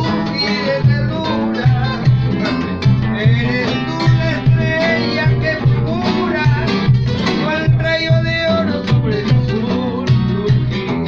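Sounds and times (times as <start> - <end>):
guitar strummed in waltz rhythm: 0.0 - 11.0
man singing: 0.0 - 11.0.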